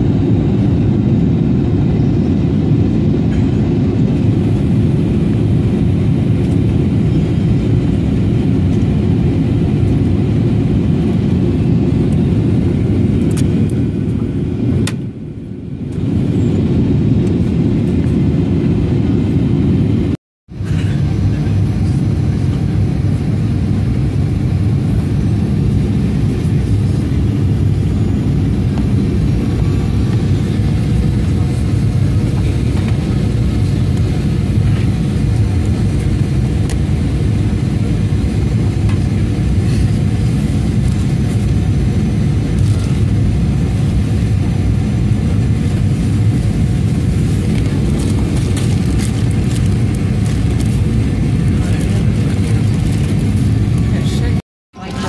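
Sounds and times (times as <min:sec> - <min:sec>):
airplane cabin engine drone: 0:00.0 - 0:55.0.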